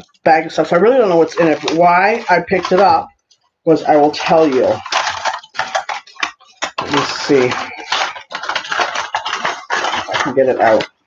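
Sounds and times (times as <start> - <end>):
plastic bag crinkling: 0.0 - 11.0
small objects clicking together: 0.8 - 11.0.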